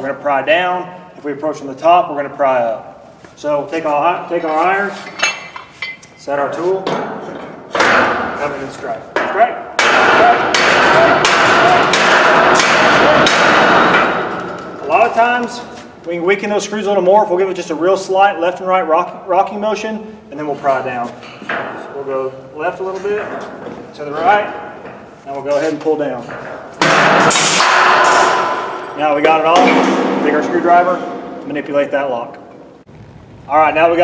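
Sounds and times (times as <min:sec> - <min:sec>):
metallic ringing: 0:04.4 - 0:06.4, 0:27.2 - 0:32.8
axe striking metal bar: 0:09.2 - 0:14.8, 0:26.8 - 0:31.6
loud metal crack: 0:09.8 - 0:15.4, 0:26.3 - 0:32.9.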